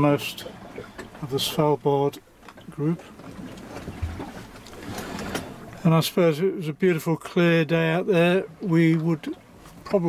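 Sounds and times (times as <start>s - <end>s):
yacht cabin background noise: 0.0s - 10.0s.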